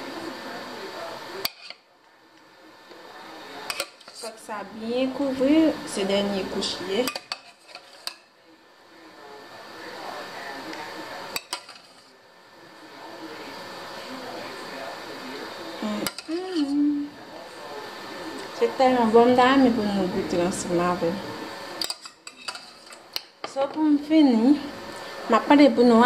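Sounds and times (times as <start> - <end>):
spoon scraping sauce: 7.1 - 8.2, 21.8 - 23.1.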